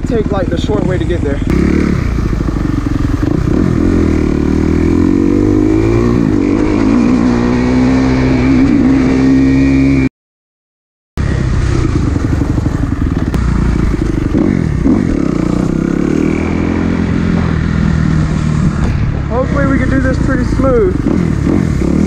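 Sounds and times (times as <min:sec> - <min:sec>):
dirt bike engine revving: 0:00.0 - 0:10.1, 0:11.2 - 0:22.0.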